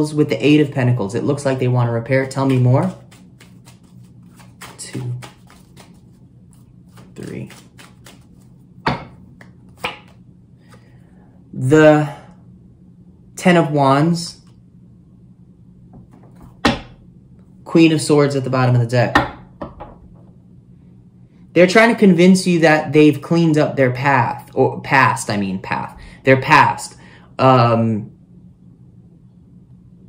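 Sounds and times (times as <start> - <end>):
faint low hum: 0.0 - 30.0
cards clicking: 2.4 - 8.5
card deck knock: 8.9 - 9.2, 9.8 - 10.2.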